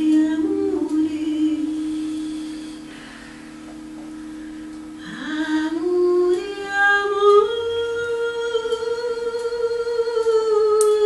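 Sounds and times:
woman singing into a microphone: 0.0 - 3.0, 5.0 - 11.0.

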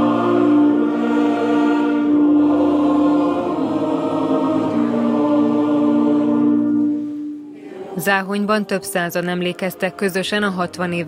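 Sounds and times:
crowd singing together slowly: 0.0 - 8.7.

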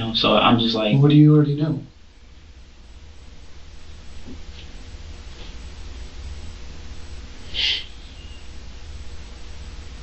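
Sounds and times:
low hum and hiss: 0.0 - 10.0
brief high hissy sound: 7.5 - 8.4.

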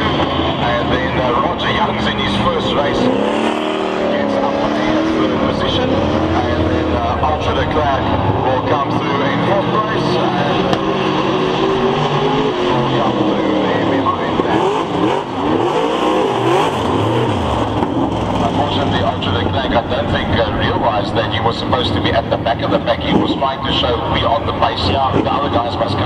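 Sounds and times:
race car engines revving and passing: 0.0 - 26.0.

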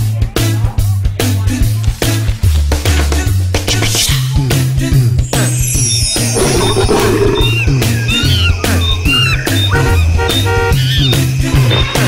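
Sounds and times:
upbeat background music: 0.0 - 12.0
gliding rising and falling tones: 5.5 - 8.0.

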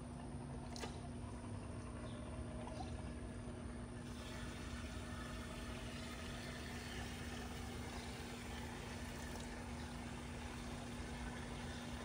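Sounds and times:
pump motor humming: 0.0 - 12.0
moving water: 0.1 - 12.0.

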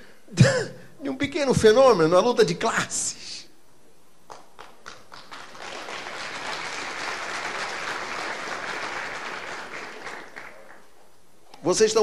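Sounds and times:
audience applause: 4.3 - 10.9.

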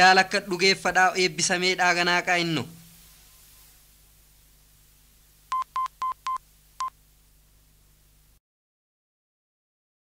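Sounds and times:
faint hiss and hum: 0.0 - 8.4
short electronic beeps: 5.5 - 6.9.

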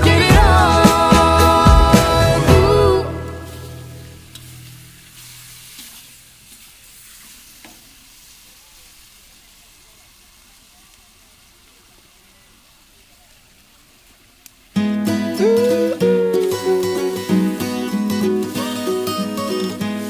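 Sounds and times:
music track: 0.0 - 4.4, 14.8 - 20.0
chicken sizzling in a wok: 3.2 - 20.0.

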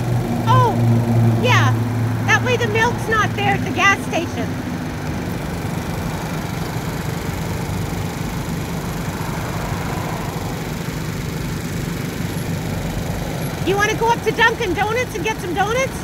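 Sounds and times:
scooter engine idling: 0.0 - 16.0.

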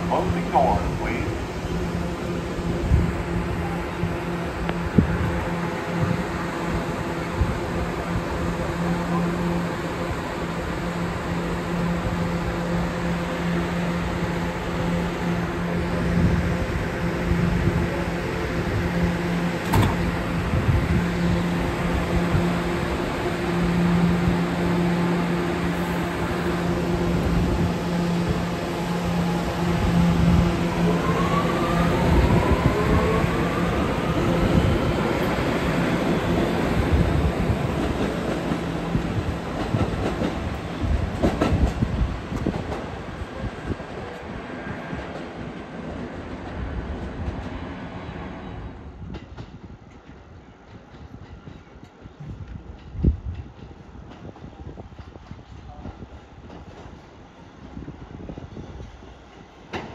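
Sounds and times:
subway train electric hum: 0.0 - 59.9.

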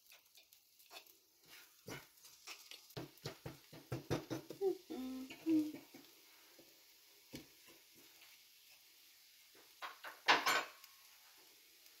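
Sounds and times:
spatula scraping frying pan: 0.0 - 4.5.

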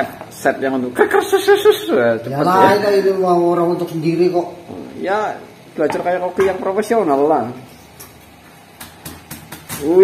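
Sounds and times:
cleaver chopping on cutting board: 8.8 - 10.0.

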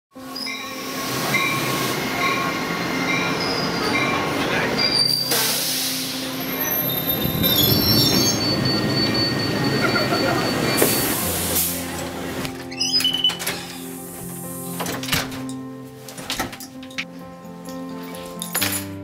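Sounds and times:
train rolling to a stop: 0.2 - 15.5
train wheels squealing: 0.3 - 11.5.

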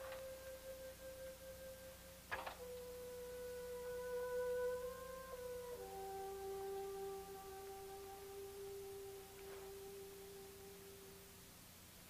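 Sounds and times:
soft sustained electronic tones: 0.0 - 12.0.

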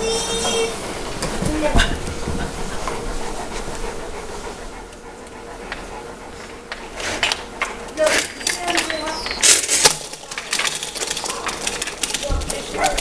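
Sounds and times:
dog squealing: 0.0 - 0.8, 8.9 - 9.5
low squeak: 0.0 - 1.1
large dog panting: 0.0 - 9.5, 10.1 - 13.0.

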